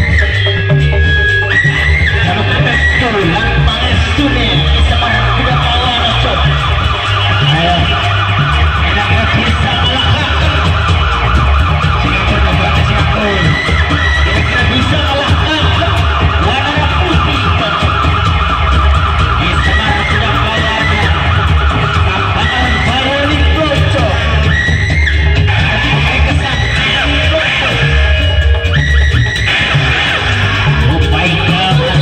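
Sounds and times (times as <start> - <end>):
loud music over sound system: 0.0 - 32.0.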